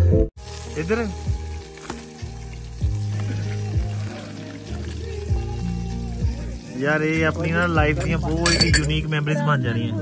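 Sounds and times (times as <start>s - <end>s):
food sizzling in a pan: 0.4s - 10.0s
music with deep bass beat: 1.3s - 9.0s.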